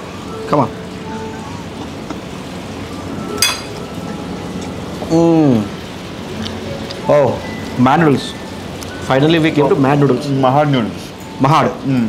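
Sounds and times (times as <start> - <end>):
room noise hiss: 0.0 - 12.0
cutlery clinking on plate: 3.4 - 3.8.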